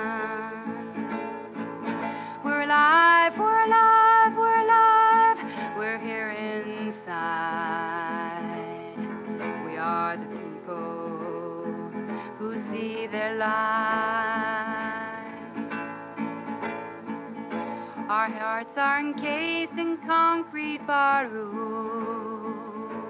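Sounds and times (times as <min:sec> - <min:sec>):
woman singing: 0:00.0 - 0:15.8, 0:18.0 - 0:23.0
strummed acoustic guitar: 0:00.0 - 0:23.0.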